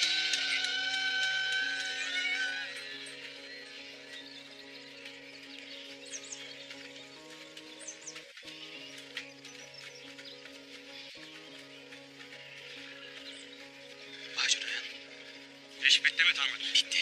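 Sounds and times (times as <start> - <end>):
held low music chords: 0.0 - 17.0.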